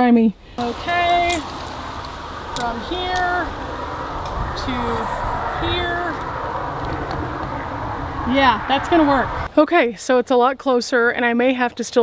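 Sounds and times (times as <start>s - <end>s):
wind buffeting microphone: 0.4s - 9.6s.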